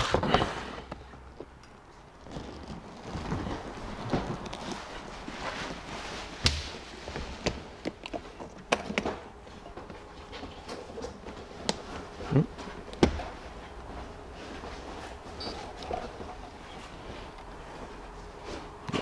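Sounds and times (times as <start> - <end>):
footsteps: 0.0 - 19.0.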